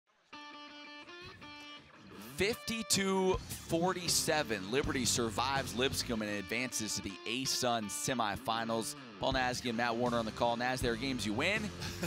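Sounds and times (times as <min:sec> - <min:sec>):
intro music of held chords: 0:00.4 - 0:12.0.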